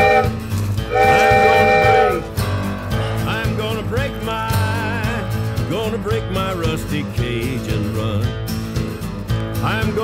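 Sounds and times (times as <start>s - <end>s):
train whistle chord: 0.0s - 2.4s
country-rock song: 0.0s - 10.0s.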